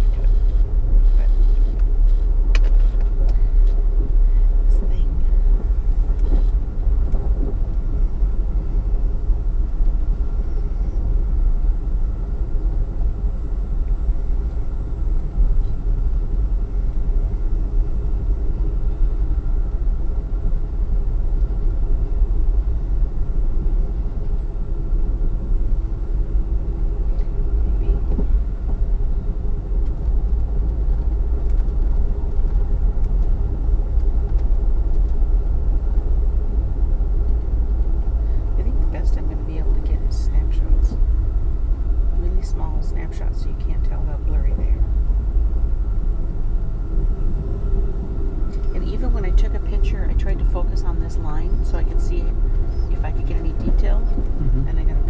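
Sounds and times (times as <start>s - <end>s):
passenger train rumbling: 0.0s - 55.0s.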